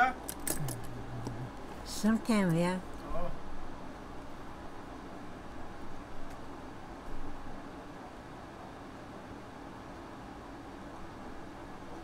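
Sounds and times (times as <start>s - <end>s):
voice humming: 0.0s - 1.6s.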